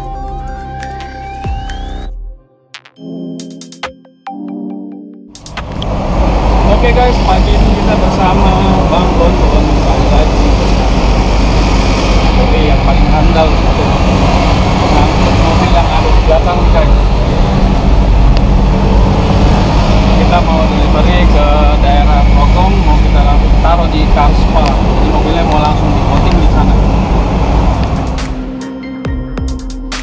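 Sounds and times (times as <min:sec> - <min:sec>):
music: 0:00.0 - 0:05.6, 0:28.1 - 0:30.0
road noise: 0:05.4 - 0:29.0
truck engine drone: 0:05.4 - 0:29.1
man talking: 0:06.7 - 0:11.0, 0:12.3 - 0:17.2, 0:20.1 - 0:27.0.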